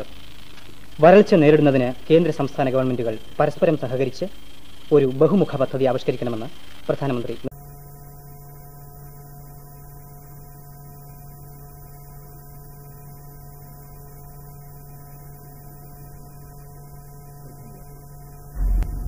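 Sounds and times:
low mains hum: 0.0 - 19.0
faint high steady tones: 0.9 - 19.0.

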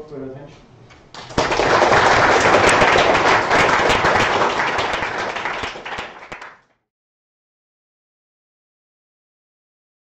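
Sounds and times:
audience applauding: 1.2 - 6.7.

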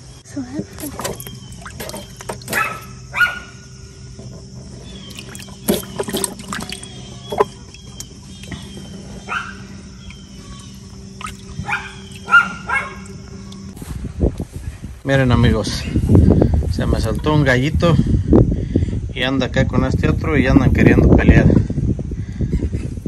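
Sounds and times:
water splashing in plastic tub: 0.6 - 3.1, 4.2 - 13.6.

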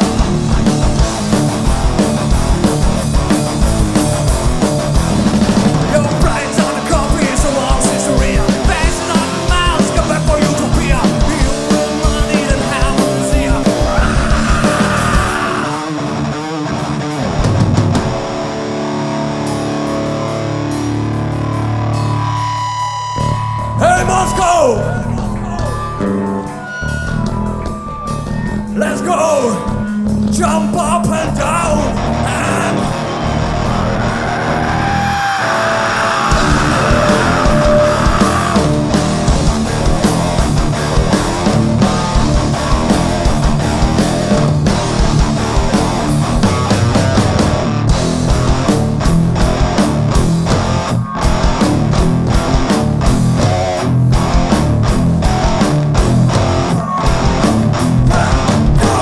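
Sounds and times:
distorted electric guitar: 0.0 - 59.0
heavy rock band playing: 0.0 - 59.0.

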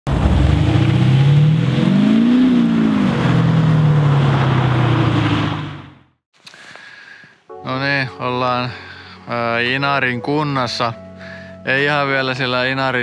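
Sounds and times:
car engine revving: 0.1 - 6.1.

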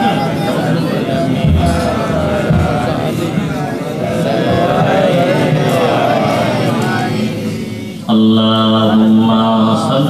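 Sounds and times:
man chanting over loudspeaker: 0.0 - 10.0.

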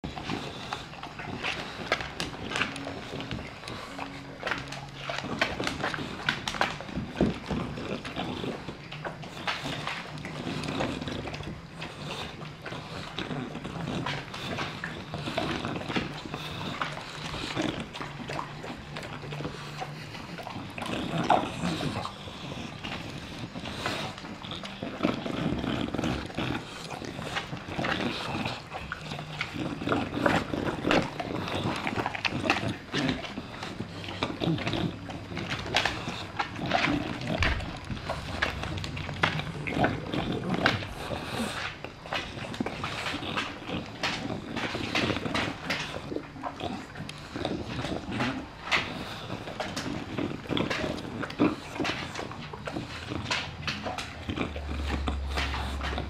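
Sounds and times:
dogs chewing and licking: 0.0 - 56.0.

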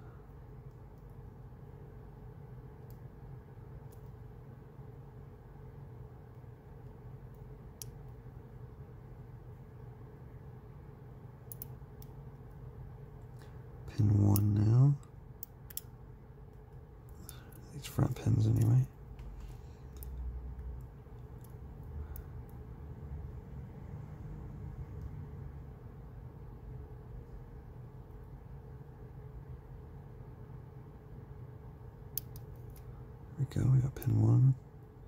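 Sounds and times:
quiet low hum: 0.0 - 35.0
lock pick metallic clicks: 15.4 - 15.9, 32.2 - 32.8.

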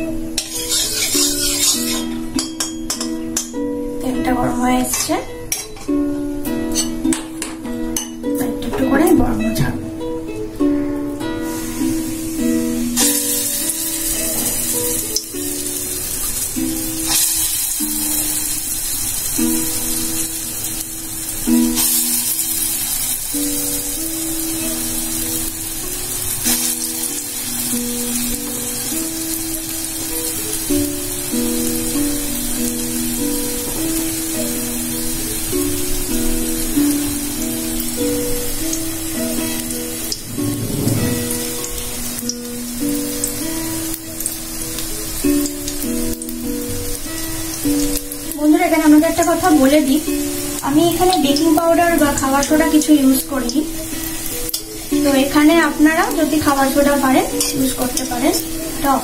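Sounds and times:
faint sizzle of frying in oil: 0.0 - 59.0
simple melody background music: 0.0 - 59.0.

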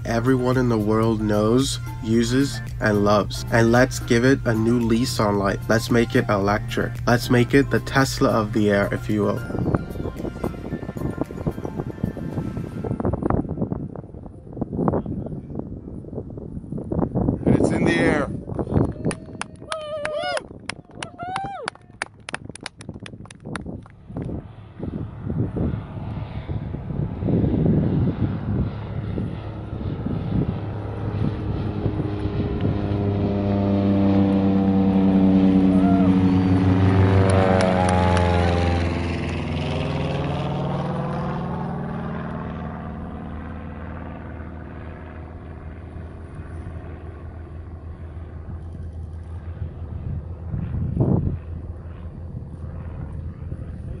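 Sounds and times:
propeller plane flying overhead: 0.0 - 54.0.

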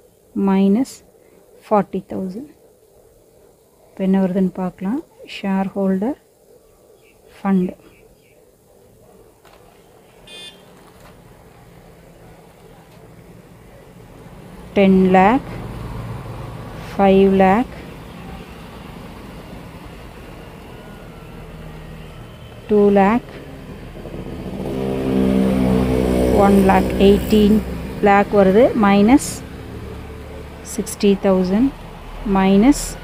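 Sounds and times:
vehicle engine hum: 9.0 - 33.0
calculator electronic beep: 10.3 - 10.7.

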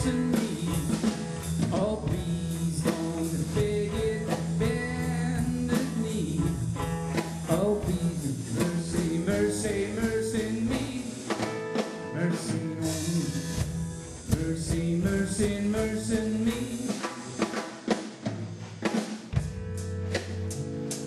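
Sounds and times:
blues band playing: 0.0 - 21.0.

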